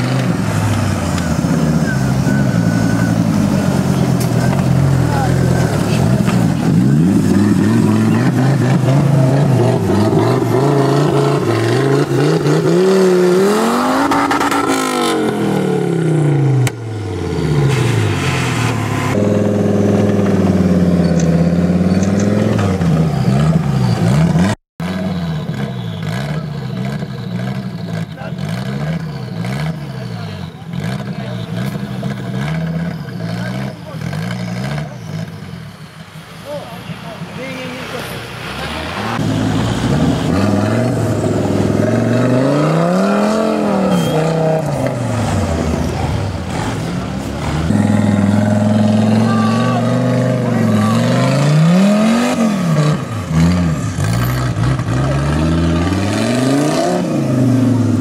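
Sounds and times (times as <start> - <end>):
off-road engine revving: 0.0 - 58.0.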